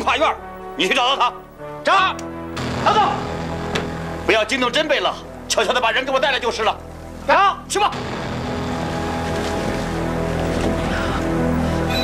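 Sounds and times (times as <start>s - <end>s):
music of low held notes: 0.0s - 12.0s.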